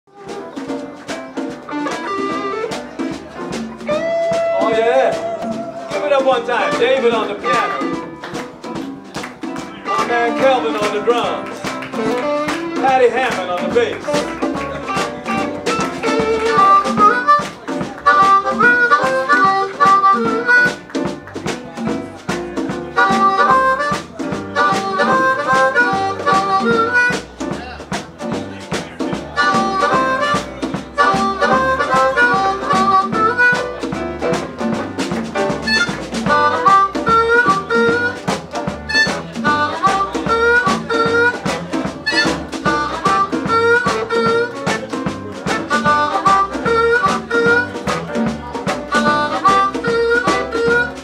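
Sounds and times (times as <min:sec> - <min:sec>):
bass: 0:00.0 - 0:51.0
harmonica playing melody: 0:00.1 - 0:08.2, 0:09.5 - 0:21.0, 0:22.6 - 0:27.6, 0:28.9 - 0:51.0
electric guitar: 0:00.1 - 0:51.0
live jump blues band: 0:00.1 - 0:51.0
piano: 0:00.1 - 0:51.0
drum hits: 0:00.2 - 0:51.0.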